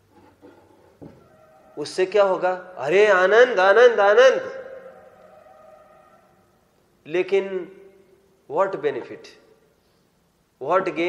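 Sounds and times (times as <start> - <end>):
man talking: 1.8 - 4.6, 7.1 - 7.8, 8.5 - 9.5, 10.6 - 11.0.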